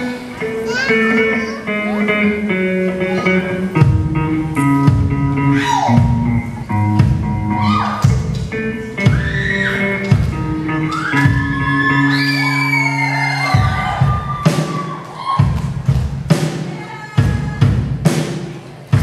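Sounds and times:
live rock band playing: 0:00.0 - 0:19.0.

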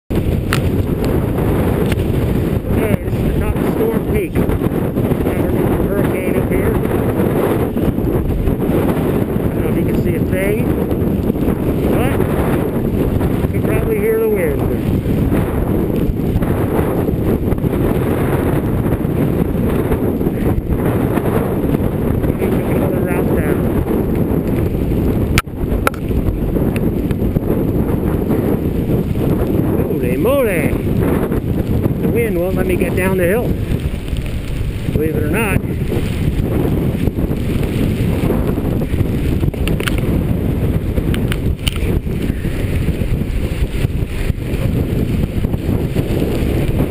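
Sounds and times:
strong wind on microphone: 0:00.1 - 0:46.9.

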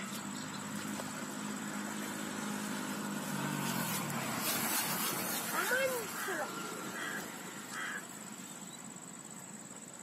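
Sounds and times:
motor vehicle engine passing: 0:00.0 - 0:09.1.

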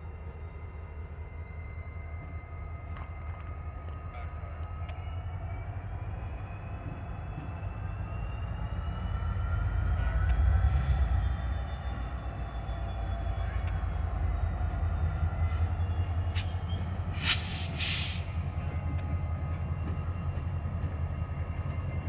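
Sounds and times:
diesel locomotive engines rumbling: 0:00.0 - 0:22.0.

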